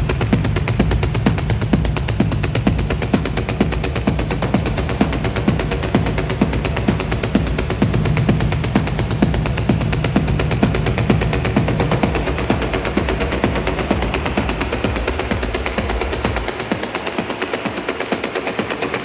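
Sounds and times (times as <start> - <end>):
heavy bass line and kick: 0.0 - 19.0
ticking techno percussion: 0.0 - 19.0.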